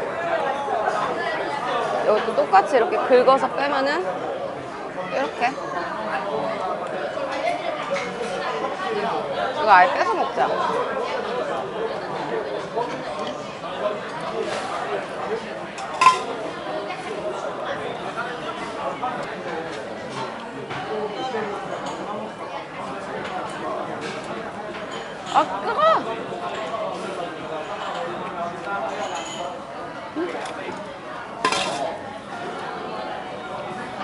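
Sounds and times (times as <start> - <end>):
diners' voices: 0.0 - 34.0
tableware clink: 15.8 - 16.3, 28.9 - 29.6, 31.4 - 32.0.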